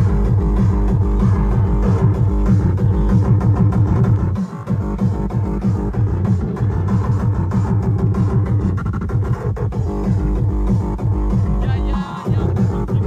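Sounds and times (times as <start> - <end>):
electronic music with heavy bass: 0.0 - 13.0.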